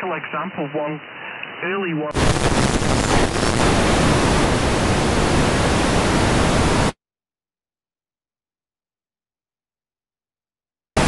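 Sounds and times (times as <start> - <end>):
radio static hiss: 0.0 - 7.0.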